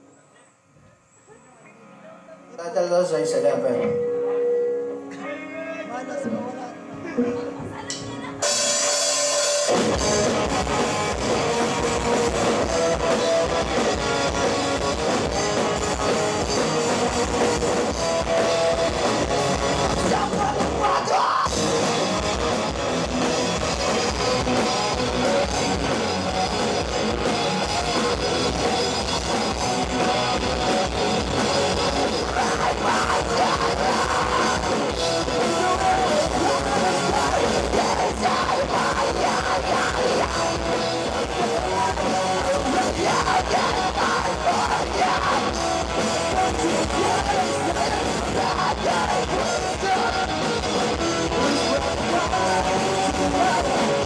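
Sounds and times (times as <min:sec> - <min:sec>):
live rock band playing: 0:03.7 - 0:54.0.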